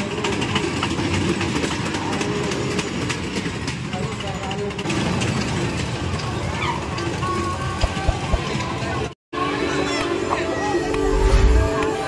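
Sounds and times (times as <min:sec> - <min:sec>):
train wheels clacking on rails: 0:00.0 - 0:08.6.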